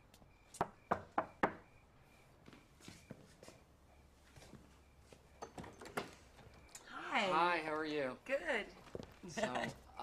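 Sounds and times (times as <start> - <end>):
knocking on a door: 0.9 - 1.6.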